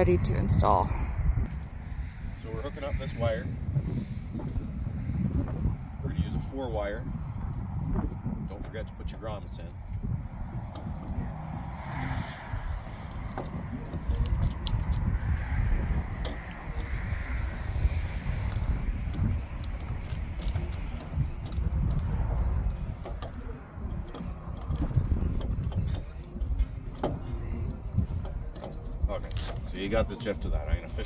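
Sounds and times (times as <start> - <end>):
low uneven rumble: 0.0 - 31.0.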